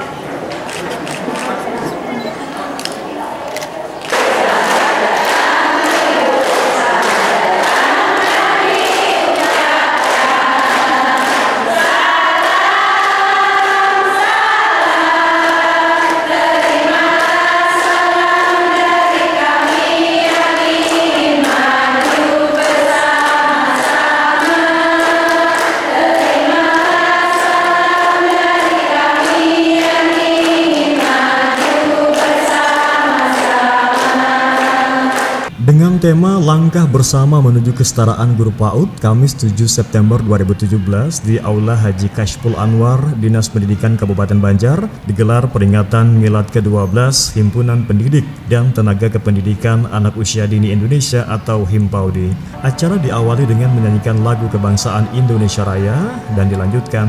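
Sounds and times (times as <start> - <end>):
hand claps: 2.8 - 35.5
women singing in unison: 4.2 - 35.5.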